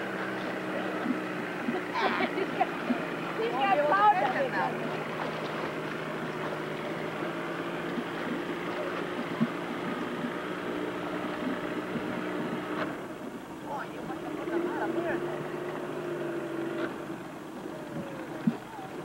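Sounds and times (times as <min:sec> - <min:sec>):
motorboat engine idling: 0:00.0 - 0:19.0
faint voices calling out: 0:13.6 - 0:19.0.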